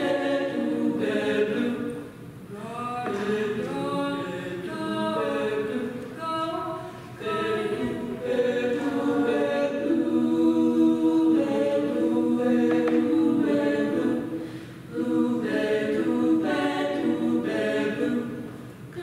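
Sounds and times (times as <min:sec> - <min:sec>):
female a cappella group singing: 0:00.0 - 0:19.0.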